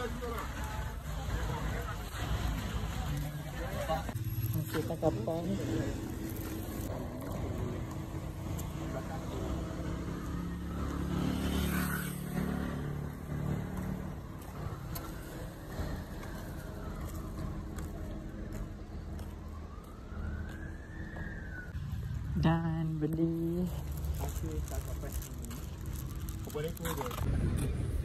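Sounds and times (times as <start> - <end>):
motor vehicle running: 0.0 - 28.0
outdoor street noise: 0.0 - 28.0.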